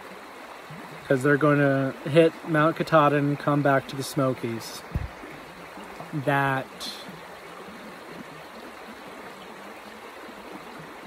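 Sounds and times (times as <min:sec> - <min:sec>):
running water rushing: 0:00.0 - 0:11.0.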